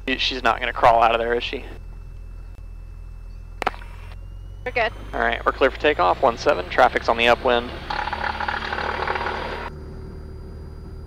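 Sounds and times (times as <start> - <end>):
aircraft engine drone: 0.0 - 11.0
rough harsh noise: 6.5 - 9.7.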